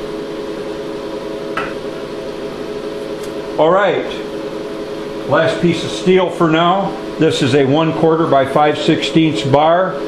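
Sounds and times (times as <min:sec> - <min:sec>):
cooling fans and pump humming: 0:00.0 - 0:10.0.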